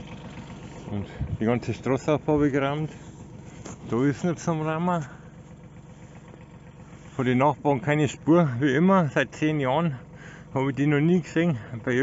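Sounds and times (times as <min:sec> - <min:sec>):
tractor diesel engine running: 0:00.0 - 0:12.0.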